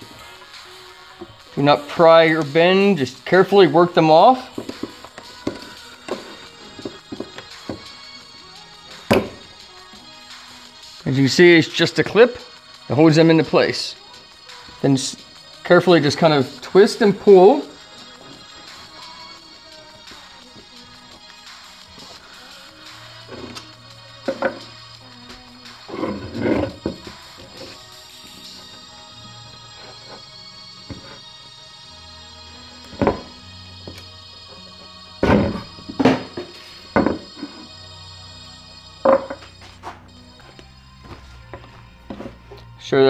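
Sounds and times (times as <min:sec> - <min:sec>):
soft background music: 0:00.0 - 0:43.0.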